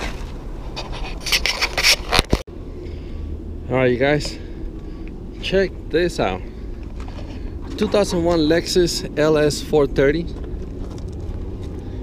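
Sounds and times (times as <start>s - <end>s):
low background rumble: 2.5s - 12.0s
footsteps crunching on gravel: 6.8s - 8.6s, 10.2s - 12.0s.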